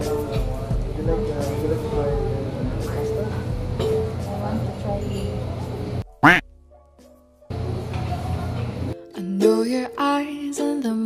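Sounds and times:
restaurant room noise: 0.0 - 6.0, 7.5 - 9.0.

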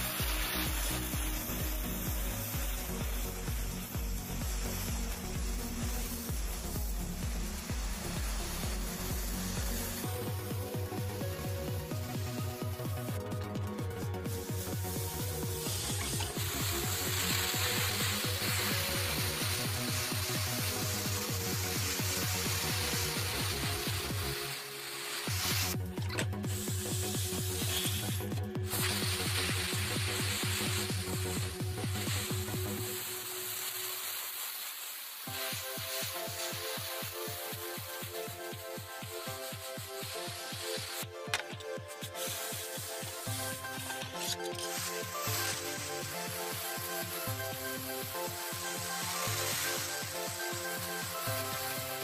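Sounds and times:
electronic music with steady beat: 0.0 - 33.6, 35.2 - 52.0.

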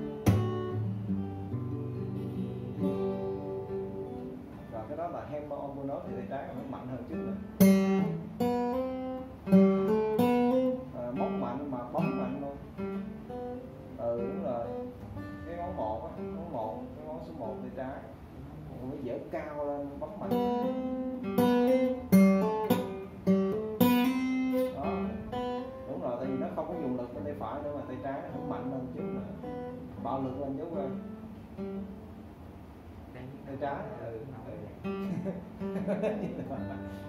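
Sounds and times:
acoustic guitars strummed chords: 0.0 - 18.3, 19.8 - 33.2, 34.7 - 37.0
acoustic guitar picked notes: 0.0 - 33.2, 34.2 - 37.0.

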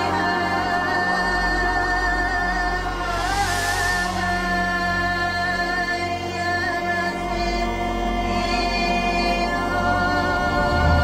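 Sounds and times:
choir singing held chords: 0.0 - 11.0
orchestral accompaniment: 0.0 - 11.0.

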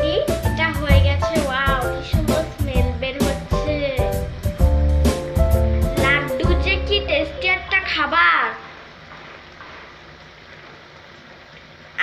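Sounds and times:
syrup sizzling in a frying pan: 0.0 - 12.0.

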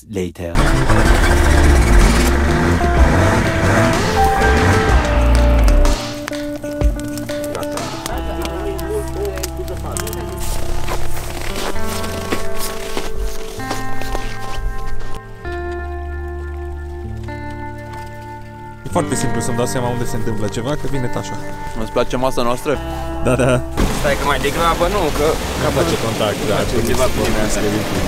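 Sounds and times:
background music: 0.6 - 28.0.

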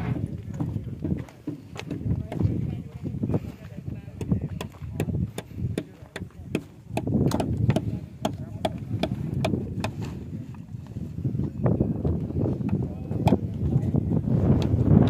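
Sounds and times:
footsteps on gravel: 0.0 - 6.8.

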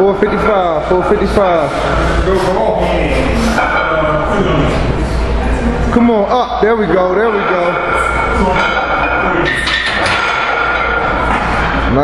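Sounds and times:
gym background hum: 0.0 - 12.0.

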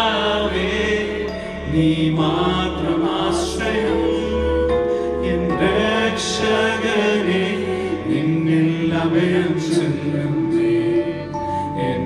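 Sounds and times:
keyboard: 0.0 - 12.0.

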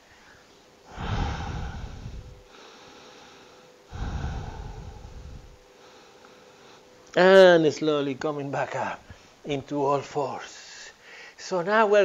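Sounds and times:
person breathing slowly: 0.0 - 6.9, 10.8 - 11.4.

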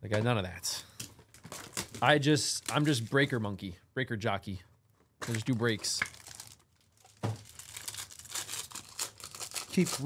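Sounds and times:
foil pack crinkling and tearing: 5.3 - 10.0.

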